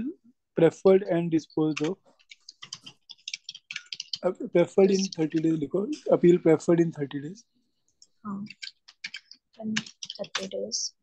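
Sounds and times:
computer keyboard typing: 0:01.4 - 0:06.1, 0:08.0 - 0:11.0.

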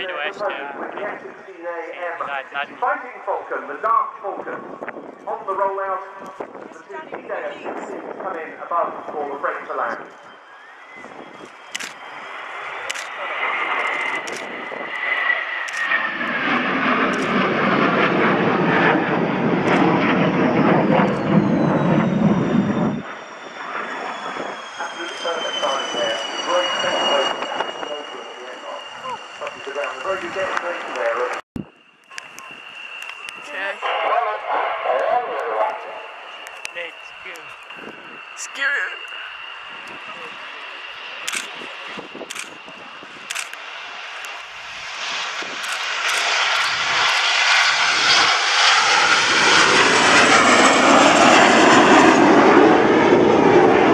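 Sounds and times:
people's voices: 0:00.0 - 0:10.0
jet engine roar: 0:00.0 - 0:53.9
turbine whine sliding down: 0:07.9 - 0:53.9.

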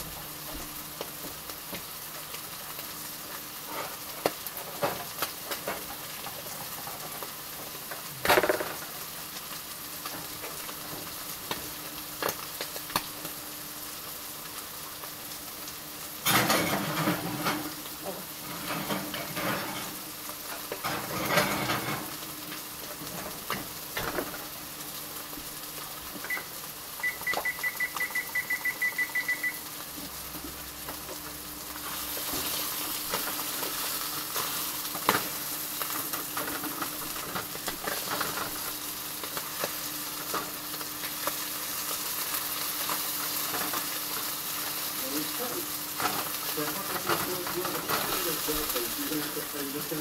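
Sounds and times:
kitchen hum and hiss: 0:00.0 - 0:50.0
appliance electronic beeps: 0:26.2 - 0:29.8.

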